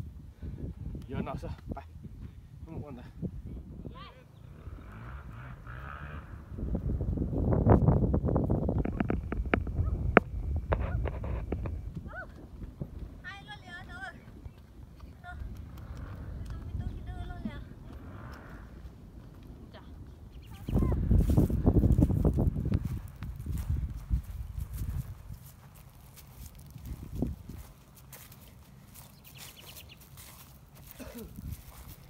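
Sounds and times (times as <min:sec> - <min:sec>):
wind rumble on microphone: 0:00.0 - 0:32.0
footsteps crunching on wood chips: 0:21.0 - 0:32.0.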